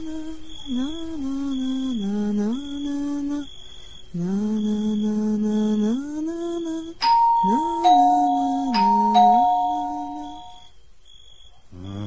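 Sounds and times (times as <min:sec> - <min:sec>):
soft music: 0:07.0 - 0:10.6
faint high alarm tone: 0:07.0 - 0:10.8.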